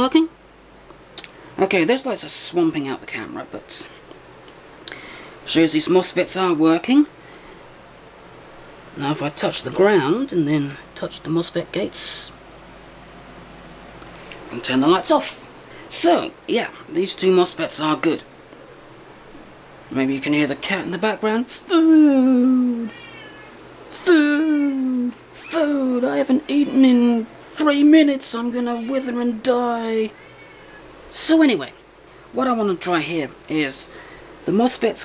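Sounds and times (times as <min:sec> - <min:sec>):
faint background hiss: 0:00.0 - 0:35.0
cat meowing: 0:22.4 - 0:23.6, 0:30.1 - 0:30.9.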